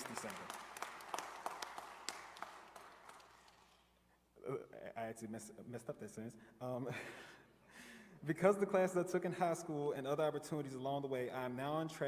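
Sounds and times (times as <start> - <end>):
audience applause: 0.0 - 3.7.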